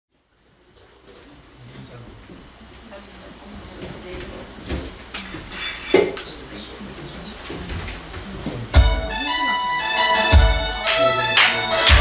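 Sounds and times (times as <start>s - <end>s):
audience chatter: 0.6s - 12.0s.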